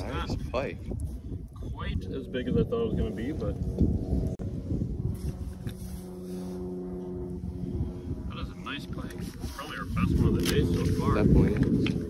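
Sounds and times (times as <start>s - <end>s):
engine hum: 0.0s - 12.0s
wind buffeting microphone: 0.0s - 12.0s.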